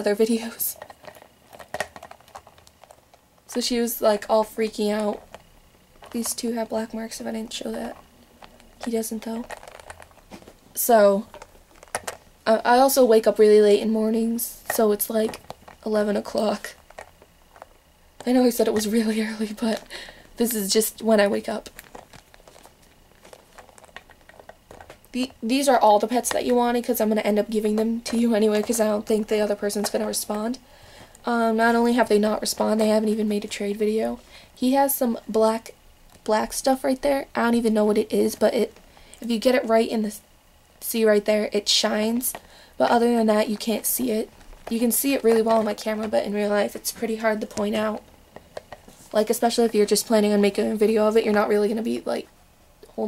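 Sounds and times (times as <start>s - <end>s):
plastic toys clicking and tapping: 7.2s - 10.5s, 11.2s - 12.2s, 21.2s - 25.4s
faint rustling: 14.1s - 34.6s, 42.0s - 51.4s.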